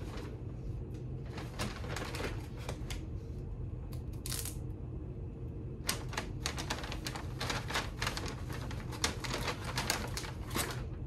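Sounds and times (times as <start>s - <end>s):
paper crackling and rustling: 0.0s - 3.1s, 5.8s - 11.0s.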